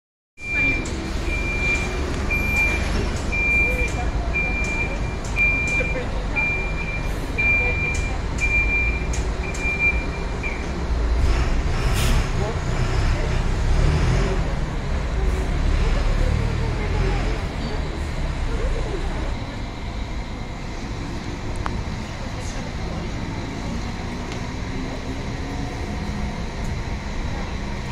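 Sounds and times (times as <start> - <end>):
electronic warning beeper: 0.4 - 10.7
diesel engine rumbling: 0.4 - 27.9.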